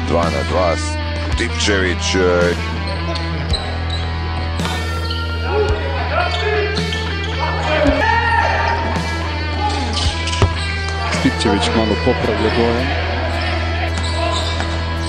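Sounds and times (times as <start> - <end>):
background music: 0.0 - 15.0
sneakers squeaking on court: 2.7 - 8.0, 8.7 - 11.3, 13.3 - 15.0
basketball bouncing: 9.9 - 11.0.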